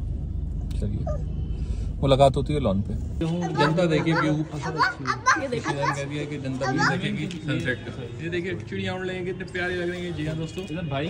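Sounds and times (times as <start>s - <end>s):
people talking: 2.0s - 11.0s.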